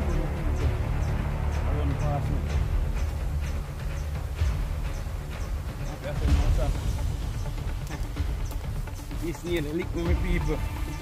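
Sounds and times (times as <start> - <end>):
dry leaves rustling and crackling: 5.7 - 11.0.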